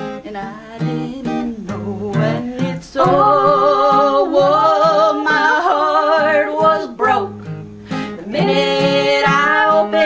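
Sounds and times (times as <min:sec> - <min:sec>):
strummed acoustic guitar: 0:00.0 - 0:10.0
three-part harmony singing: 0:00.3 - 0:10.0.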